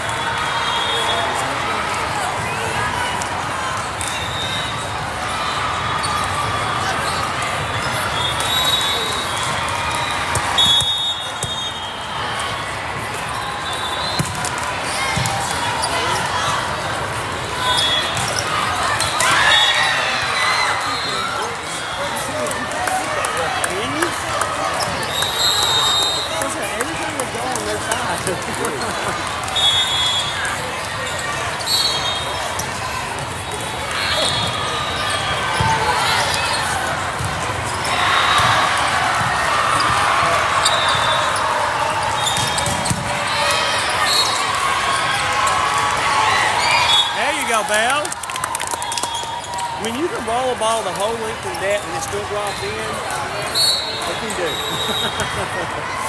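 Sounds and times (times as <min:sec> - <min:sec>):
many voices in hall: 0:00.0 - 0:56.0
shoes squeaking on court: 0:06.0 - 0:11.9, 0:13.2 - 0:16.6, 0:17.5 - 0:22.2, 0:23.9 - 0:38.6, 0:39.2 - 0:45.1, 0:49.1 - 0:55.5
volleyballs struck and bouncing: 0:14.1 - 0:16.2, 0:42.1 - 0:43.7.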